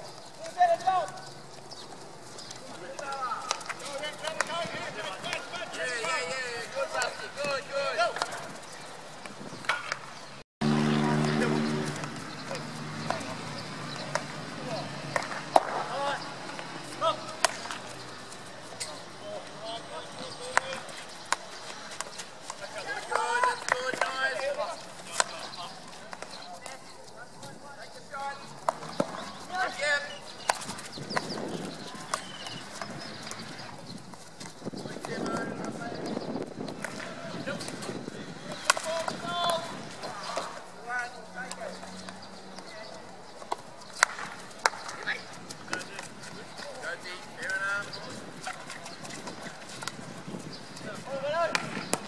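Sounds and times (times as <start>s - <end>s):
hockey sticks striking balls: 0.1s - 10.4s, 11.1s - 27.5s, 28.2s - 52.0s
players shouting: 2.6s - 8.6s, 22.5s - 25.9s, 28.1s - 30.6s, 36.9s - 41.8s
hockey sticks striking ball: 13.9s - 14.4s, 15.1s - 18.0s, 20.3s - 26.8s, 30.4s - 33.6s, 36.7s - 40.6s, 43.4s - 46.8s, 50.8s - 52.0s.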